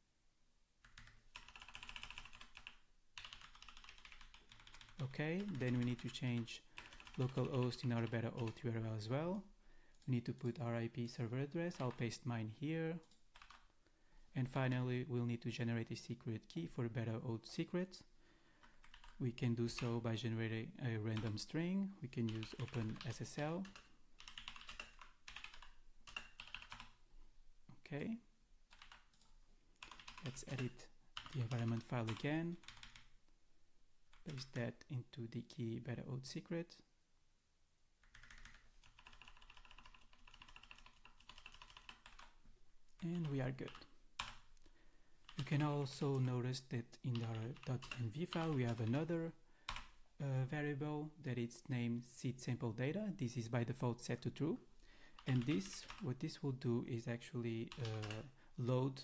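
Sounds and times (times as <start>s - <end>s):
typing on computer keyboard: 0.8s - 6.2s, 6.8s - 8.6s, 13.0s - 13.7s, 18.6s - 19.2s, 22.3s - 27.0s, 28.7s - 33.1s, 38.0s - 42.4s, 43.7s - 44.4s, 47.1s - 49.0s, 49.7s - 49.9s, 55.2s - 56.0s, 57.7s - 58.3s.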